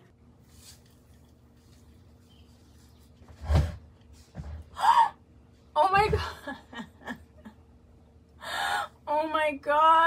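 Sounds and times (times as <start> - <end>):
woman gasping: 8.4 - 9.0.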